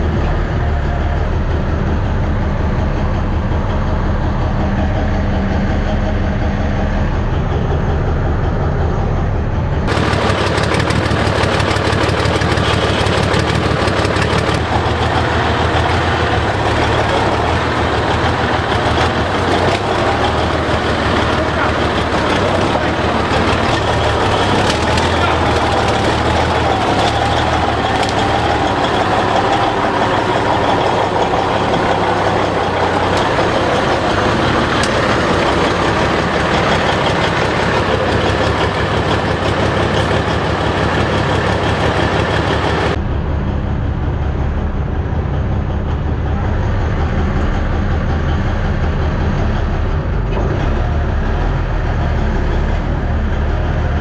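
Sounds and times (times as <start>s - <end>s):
diesel engine running loudly: 0.0s - 54.0s.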